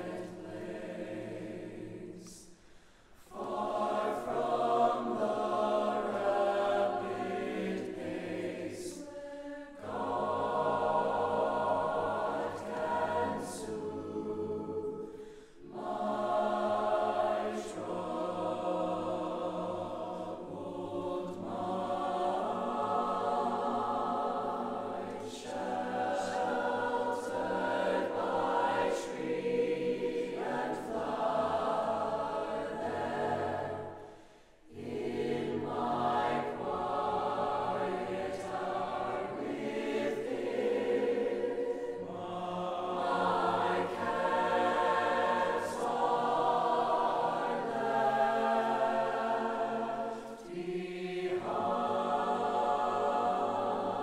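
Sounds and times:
choir singing in harmony: 0.0 - 54.0.

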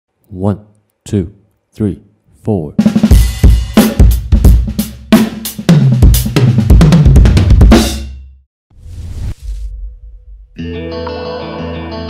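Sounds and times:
acoustic drum kit playing: 2.9 - 8.2.

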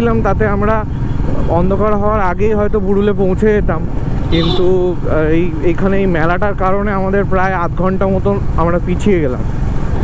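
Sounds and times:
motorcycle engine: 0.0 - 7.5
person talking: 0.0 - 9.5.

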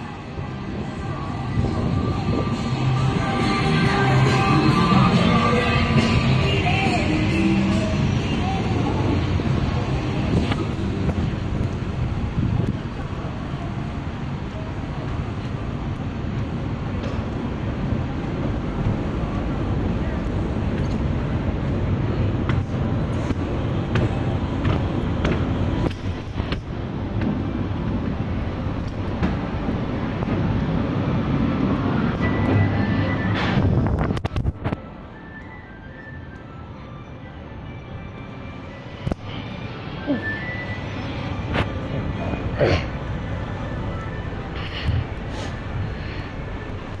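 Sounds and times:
low rumble of station ambience: 0.0 - 47.0.

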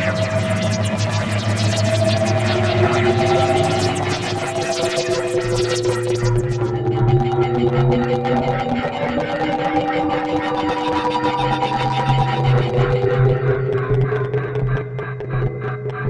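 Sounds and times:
fast flickering electronic texture: 0.0 - 6.8
low drone: 0.0 - 13.9
held tones shifting in pitch: 0.0 - 14.0.

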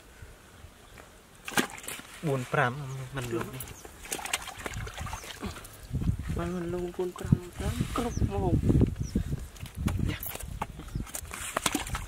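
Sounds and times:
fish thrashing in plastic bucket: 1.4 - 2.2, 3.2 - 5.8, 9.8 - 12.0.

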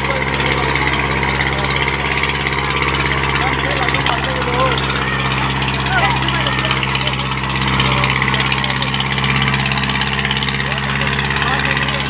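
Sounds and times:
tractor diesel engine under load: 0.0 - 12.0
voices of onlookers: 0.0 - 12.0.

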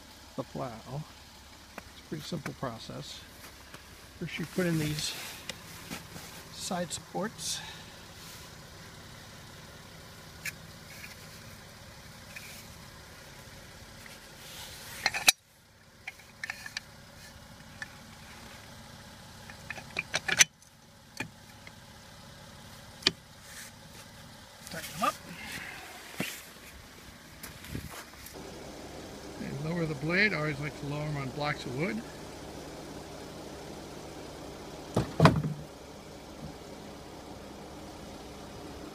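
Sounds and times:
car engine idling: 0.0 - 38.9.

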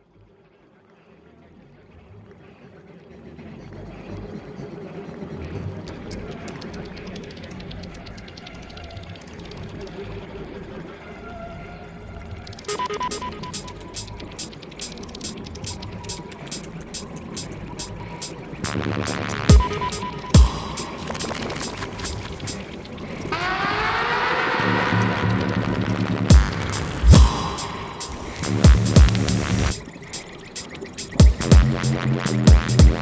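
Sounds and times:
dense murky electronic texture: 2.8 - 33.0
sharp even ticks: 12.6 - 23.0, 26.3 - 33.0
high held tone: 12.7 - 14.6, 18.7 - 22.8, 24.6 - 30.0.

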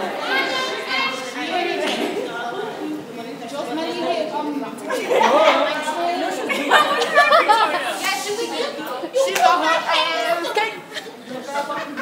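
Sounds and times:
young people chattering: 0.0 - 12.0.

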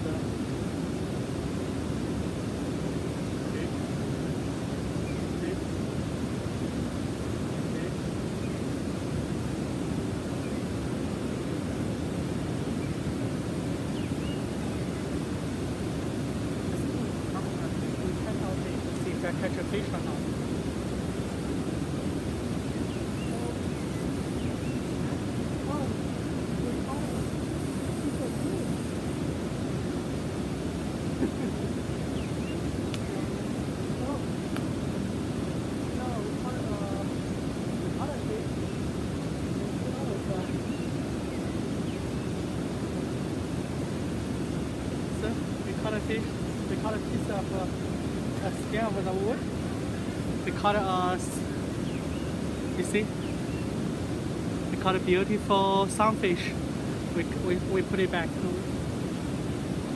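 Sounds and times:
waterfall rushing: 0.0 - 59.9.

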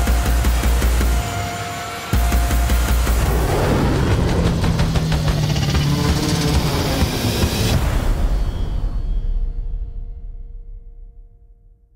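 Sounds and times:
cinematic trailer music: 0.0 - 11.9
action sound effects: 3.1 - 9.1.

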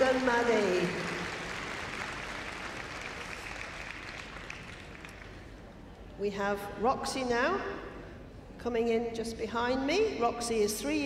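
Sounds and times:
audience applause: 0.0 - 5.5.

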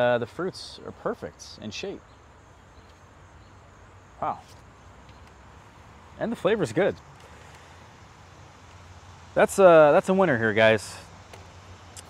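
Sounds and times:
low outdoor hum: 0.0 - 12.0.

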